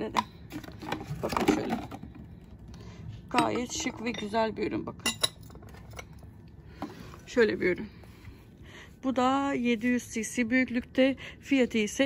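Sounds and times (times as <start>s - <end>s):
glass clinking: 3.3s - 4.4s, 5.0s - 6.1s.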